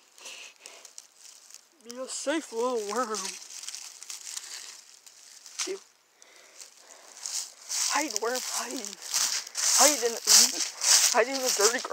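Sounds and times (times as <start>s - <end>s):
dry leaves rustling: 0.0s - 11.9s.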